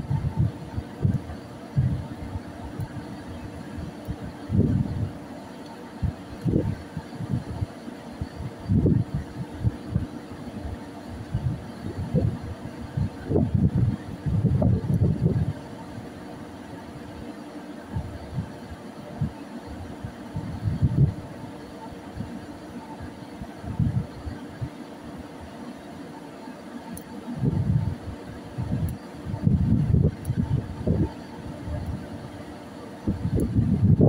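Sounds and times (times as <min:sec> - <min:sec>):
wind buffeting microphone: 0:00.0 - 0:05.2, 0:06.0 - 0:15.6, 0:20.3 - 0:21.3, 0:23.5 - 0:24.7, 0:27.4 - 0:32.3, 0:33.0 - 0:34.0
faint machinery hum: 0:00.0 - 0:34.0.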